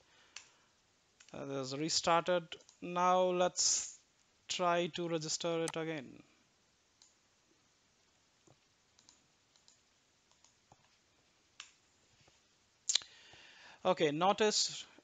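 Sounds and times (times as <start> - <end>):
mouse and keyboard clicks: 9.0 - 10.9.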